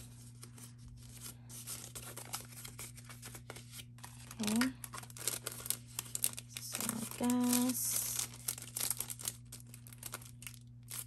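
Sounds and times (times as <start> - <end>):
banknotes and plastic crinkling: 0.0 - 11.0.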